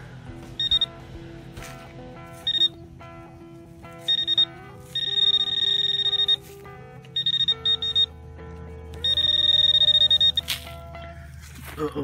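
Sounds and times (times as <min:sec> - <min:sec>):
metal detector probe chirping: 0:00.6 - 0:00.9, 0:02.4 - 0:02.8, 0:04.0 - 0:08.2, 0:09.0 - 0:10.8.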